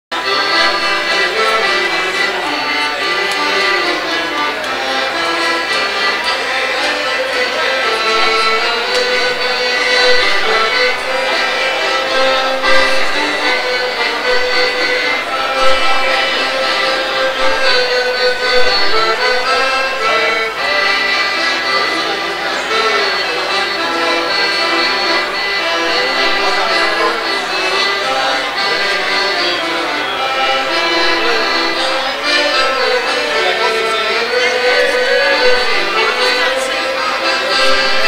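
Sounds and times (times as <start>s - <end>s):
piano accordion playing tune: 0.1s - 38.0s.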